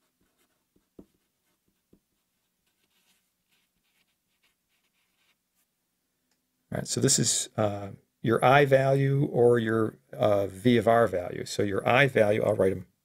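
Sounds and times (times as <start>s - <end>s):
marker squeaking on paper: 0.0s - 5.4s.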